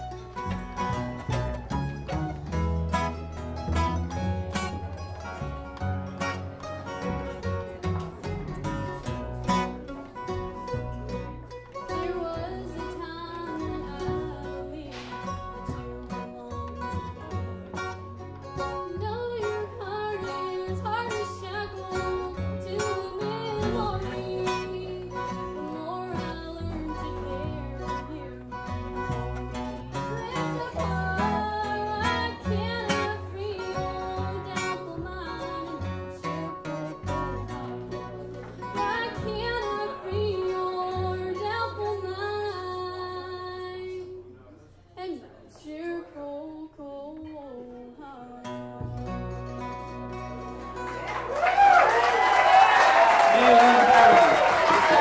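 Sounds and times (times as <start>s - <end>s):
bluegrass band playing: 0.0s - 44.4s, 46.5s - 55.0s
woman singing: 11.8s - 17.6s, 18.8s - 44.3s, 45.0s - 49.3s.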